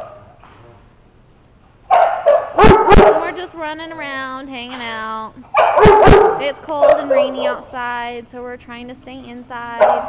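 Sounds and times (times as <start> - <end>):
dog barking: 1.9 - 3.4, 5.5 - 7.6, 9.8 - 10.0.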